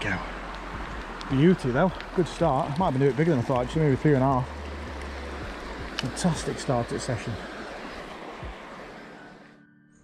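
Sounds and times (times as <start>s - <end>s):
outdoor waterside noise: 0.0s - 9.6s
faint background music: 0.0s - 10.0s.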